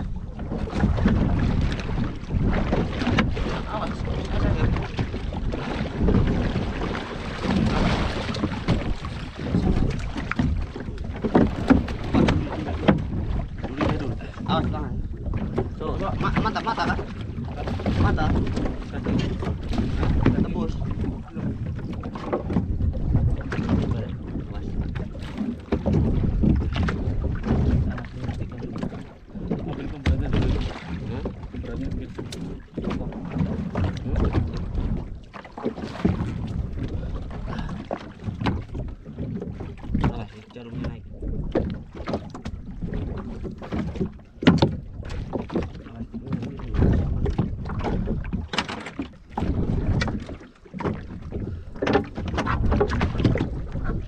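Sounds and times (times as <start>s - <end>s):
water slapping boat hull: 0.0s - 54.0s
wind buffeting microphone: 0.0s - 54.0s.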